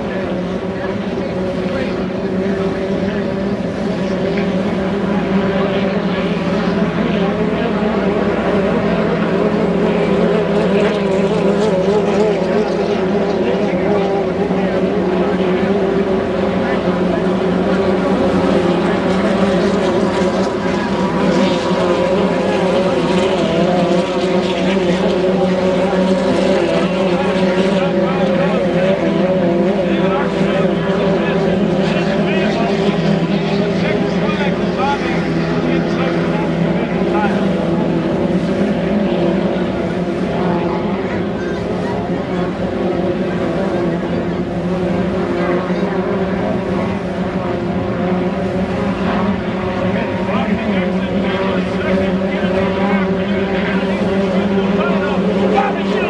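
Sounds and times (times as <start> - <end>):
racing boat engines: 0.0 - 56.0.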